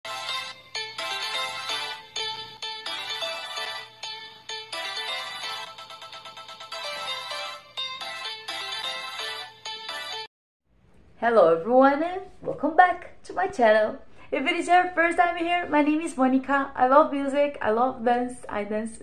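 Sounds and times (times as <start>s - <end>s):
upbeat intro music: 0.1s - 10.3s.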